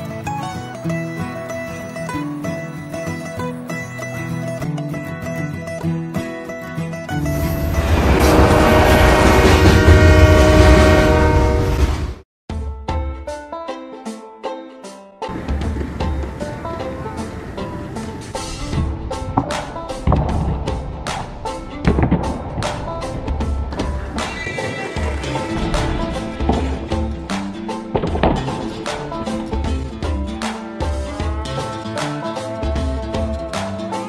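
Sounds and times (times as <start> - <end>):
low rumble of train: 7.2 - 12.2, 15.3 - 24.3
train horn: 7.4 - 12.2
background music with drums: 12.5 - 14.2, 14.8 - 34.0
pulsing bass: 18.5 - 24.3, 25.0 - 31.9.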